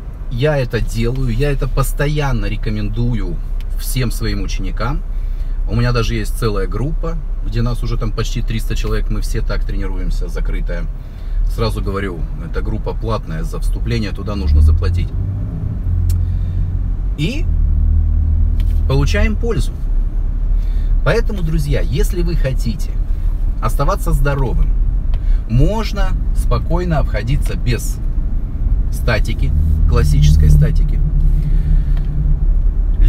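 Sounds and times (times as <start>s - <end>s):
car cabin rumble while driving: 5.6s - 33.0s.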